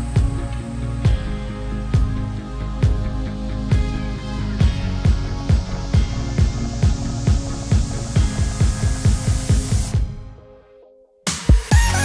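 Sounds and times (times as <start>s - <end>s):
deep kick drums: 0.0s - 10.4s
electronic dance music: 0.0s - 10.4s, 11.3s - 12.0s.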